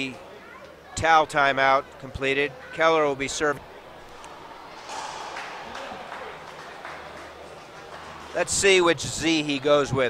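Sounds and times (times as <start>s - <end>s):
murmur of voices in a hall: 0.0s - 10.0s.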